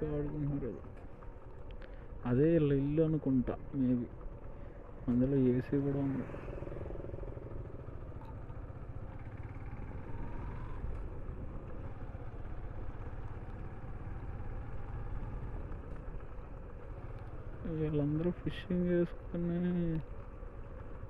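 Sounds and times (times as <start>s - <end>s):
constant rush of noise: 0.0s - 21.0s
motorcycle engine running: 0.0s - 21.0s.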